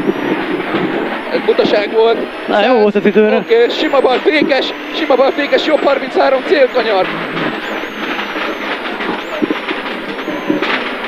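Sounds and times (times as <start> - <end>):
rally car engine: 0.0 - 11.0
road noise inside car: 0.0 - 11.0.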